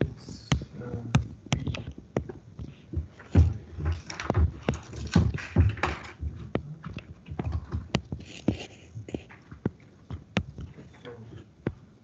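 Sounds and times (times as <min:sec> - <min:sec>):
stylus tapping on drawing tablet: 0:06.5 - 0:10.7.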